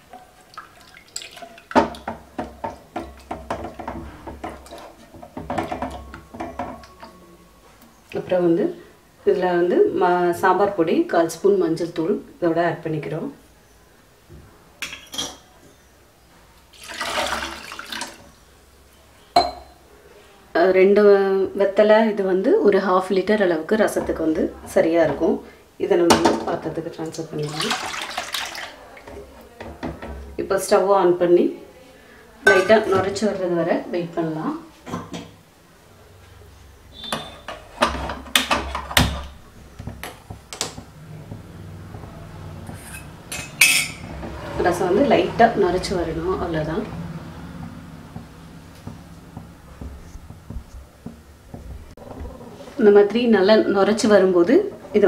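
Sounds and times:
water splashing and sloshing: 0.0s - 7.0s, 16.7s - 18.4s, 27.3s - 29.6s
metal utensils and pans clinking: 1.2s - 7.2s, 14.8s - 15.5s, 32.5s - 33.3s, 42.7s - 44.4s.

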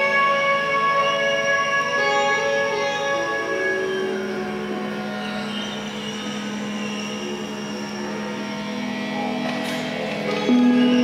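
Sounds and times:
low electronic drone: 0.0s - 11.0s.

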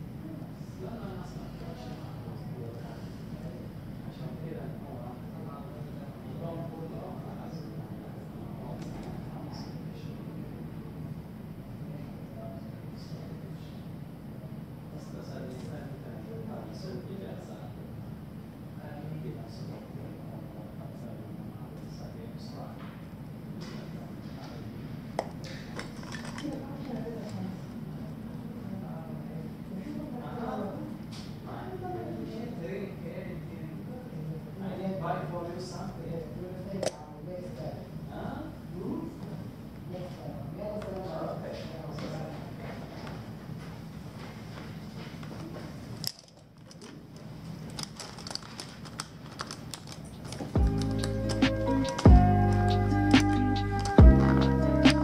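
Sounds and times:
pens clicking and rattling: 25.7s - 27.4s, 46.0s - 54.0s
paper rustling: 44.2s - 52.0s
background music: 50.6s - 55.0s.

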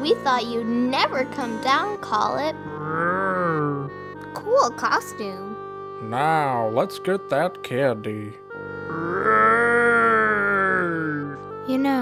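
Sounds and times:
monster groan: 2.7s - 4.0s, 8.9s - 11.4s.

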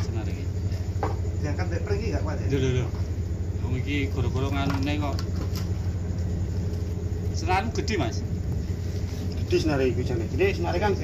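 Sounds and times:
low engine-like hum: 0.0s - 11.0s.

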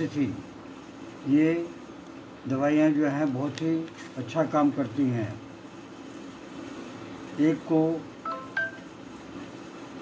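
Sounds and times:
short electronic beeps: 8.2s - 8.9s.

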